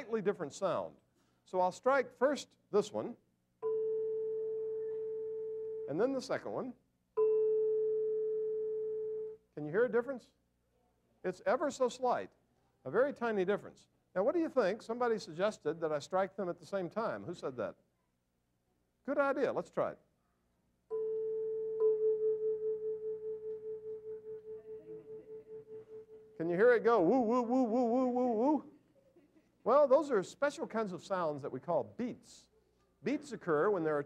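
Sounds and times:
tuning fork ringing: 3.6s - 5.8s, 7.2s - 9.4s, 20.9s - 26.1s.

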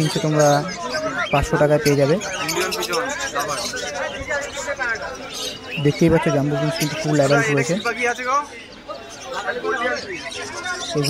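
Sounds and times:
finches chirping: 0.0s - 11.0s.

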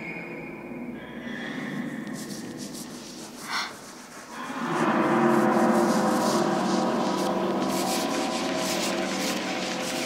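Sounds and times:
chalk scratching on blackboard: 2.2s - 4.4s, 5.8s - 10.0s.

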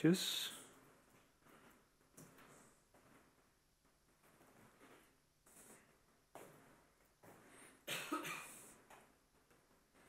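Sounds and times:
person coughing: 7.9s - 8.7s.

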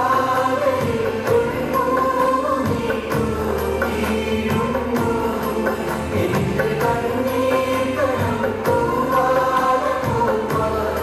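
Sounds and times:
voices singing together: 0.0s - 11.0s.

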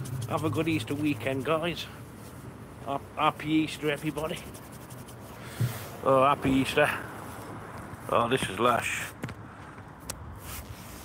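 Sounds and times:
low steady rumble: 0.0s - 8.0s.

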